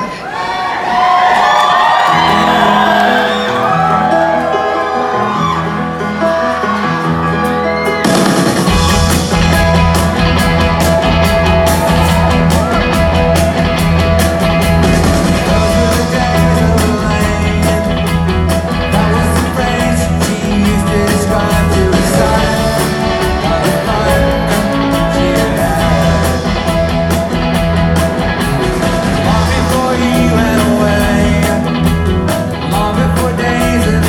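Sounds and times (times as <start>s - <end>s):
drum kit: 1.0s - 34.0s
electric guitars: 1.0s - 34.0s
keyboard playing: 1.6s - 34.0s
bass guitar: 1.8s - 34.0s.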